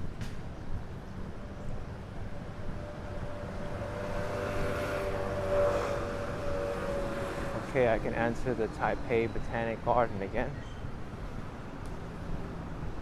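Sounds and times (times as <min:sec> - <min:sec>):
traffic rushing past: 0:00.0 - 0:13.0
vehicle engine hum: 0:00.3 - 0:13.0.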